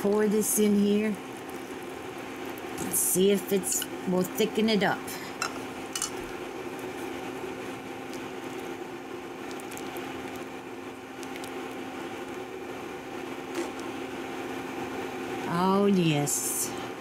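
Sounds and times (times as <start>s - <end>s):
steady low hum: 0.0s - 17.0s
soup bubbling in a pan: 0.6s - 2.9s, 5.7s - 14.9s.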